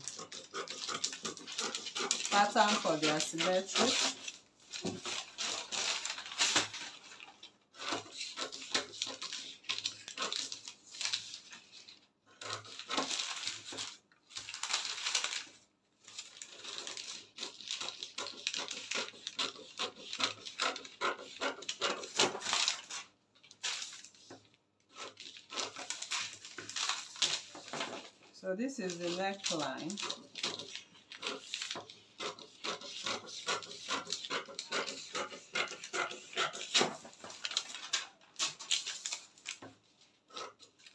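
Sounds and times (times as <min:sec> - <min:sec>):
scissors snipping paper: 0:00.0 - 0:11.5, 0:12.3 - 0:15.5, 0:16.2 - 0:28.1, 0:28.7 - 0:40.9
paper crackle: 0:00.0 - 0:40.9.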